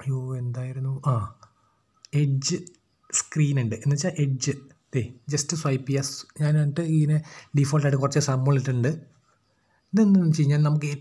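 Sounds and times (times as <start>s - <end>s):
man talking: 0.0s - 9.1s, 9.9s - 11.0s.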